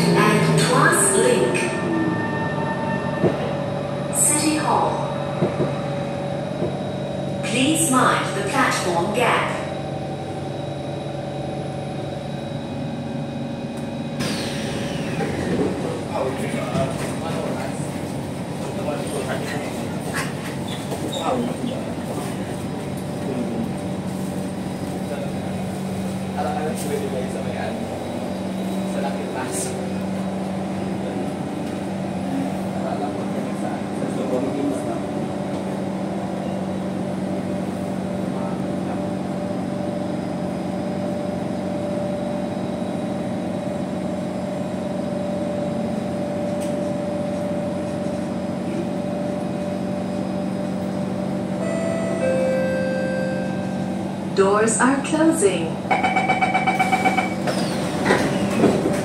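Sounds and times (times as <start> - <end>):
passengers' voices: 0.0 - 59.0
train hum: 0.0 - 59.0.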